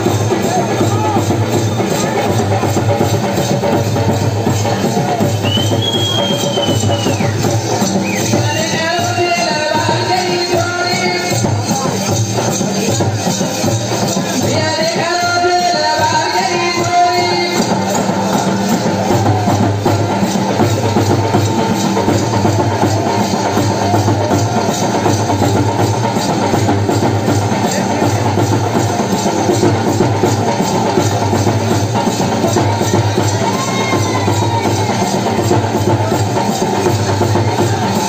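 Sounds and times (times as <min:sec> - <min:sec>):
loud folk music: 0:00.0 - 0:38.0
steady drum beat: 0:00.0 - 0:38.0
person singing: 0:14.4 - 0:18.1.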